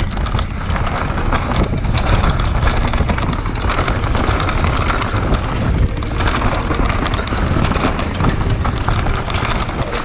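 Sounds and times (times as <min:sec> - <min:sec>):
bike clicks and rattles: 0:00.0 - 0:10.0
bike tyre noise: 0:00.0 - 0:10.0
wind buffeting microphone: 0:00.0 - 0:10.0.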